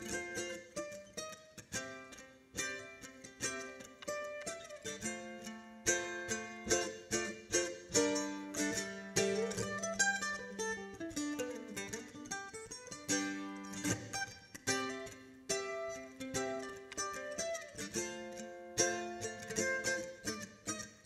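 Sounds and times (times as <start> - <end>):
mandolin melody: 0.0 - 21.0.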